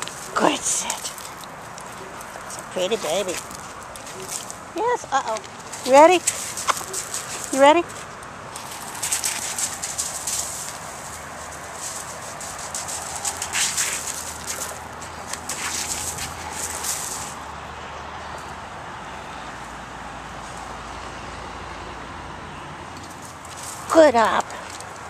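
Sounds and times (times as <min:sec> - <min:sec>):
dog paws crunching on gravel: 0:00.0 - 0:17.4, 0:23.1 - 0:25.0
low background noise: 0:00.0 - 0:25.0.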